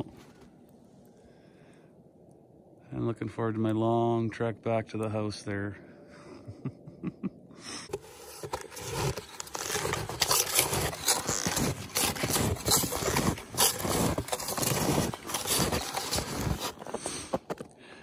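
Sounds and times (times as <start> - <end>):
snowshoes crunching on snow: 7.9 - 17.7.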